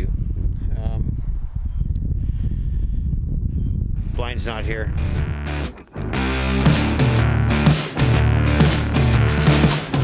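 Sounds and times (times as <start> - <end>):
wind buffeting microphone: 0.0 - 5.4.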